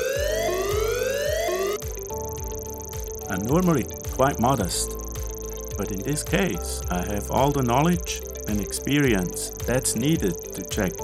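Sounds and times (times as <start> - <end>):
rising alarm siren whoop: 0.0 - 1.8
background music: 0.0 - 11.0.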